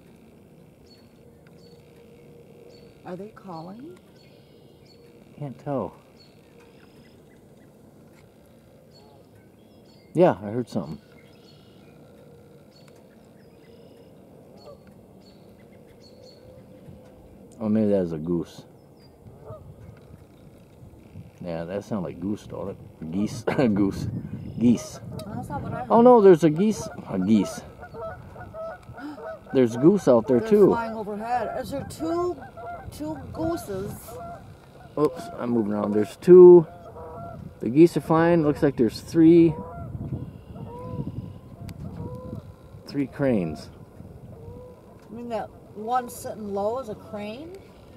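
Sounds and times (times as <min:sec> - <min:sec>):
distant bird calls: 0:00.0 - 0:47.9
distant goose honks: 0:10.8 - 0:17.5, 0:18.3 - 0:21.9, 0:24.4 - 0:47.9.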